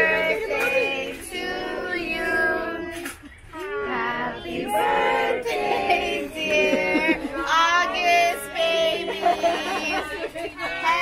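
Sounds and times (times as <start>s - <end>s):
people singing a birthday tune: 0.0s - 11.0s.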